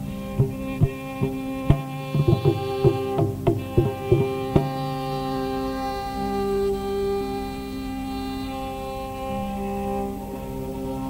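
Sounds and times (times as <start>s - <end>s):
hand drum strokes: 0.0s - 6.5s
steady sustained drone: 0.0s - 11.0s.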